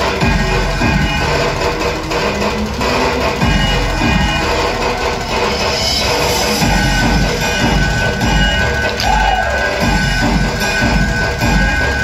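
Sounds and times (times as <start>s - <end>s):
loud dance music with bass: 0.0s - 12.0s
swooping tone: 0.0s - 12.0s.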